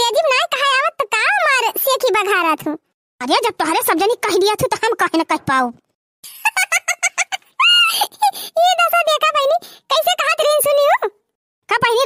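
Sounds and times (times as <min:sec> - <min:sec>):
cartoon character talking rapidly: 0:00.0 - 0:05.9, 0:07.6 - 0:12.0.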